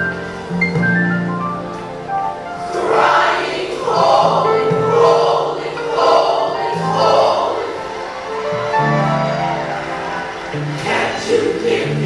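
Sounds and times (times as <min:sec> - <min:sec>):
choir singing gospel music: 0:02.3 - 0:12.0.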